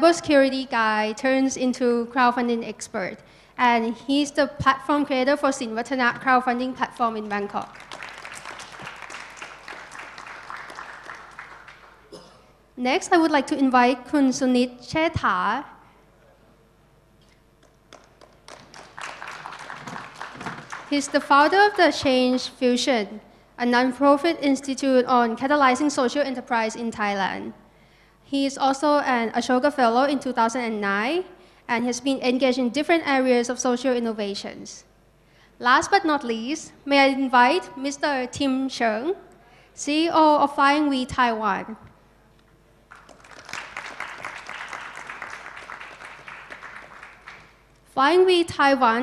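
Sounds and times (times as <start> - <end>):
audience applauding: 7.6 - 12.1, 17.6 - 21.8, 42.9 - 47.6.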